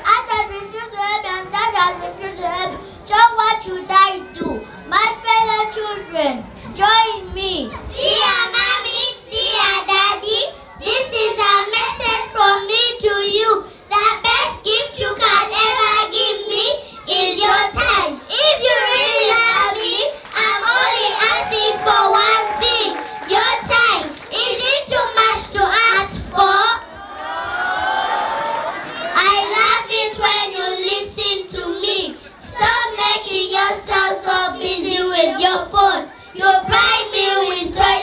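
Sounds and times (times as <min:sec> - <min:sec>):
girl singing through loudspeaker: 0:00.0 - 0:27.0, 0:29.1 - 0:38.0.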